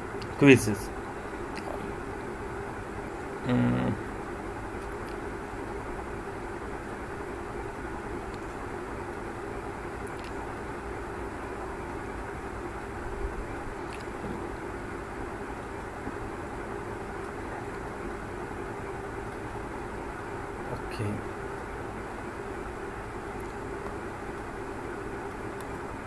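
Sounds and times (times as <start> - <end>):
background hum and hiss: 0.0 - 26.0.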